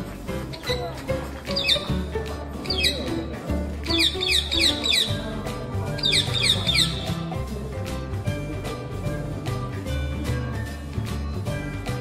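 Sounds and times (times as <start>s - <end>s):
background music with steady beat: 0.0s - 12.0s
parrot chirping: 3.9s - 5.2s, 6.0s - 7.2s.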